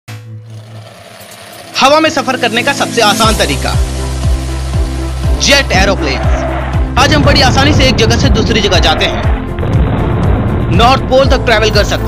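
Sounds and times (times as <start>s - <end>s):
buzzing propeller engine drone: 0.4s - 2.0s
man's voice: 5.3s - 9.5s, 10.6s - 12.0s.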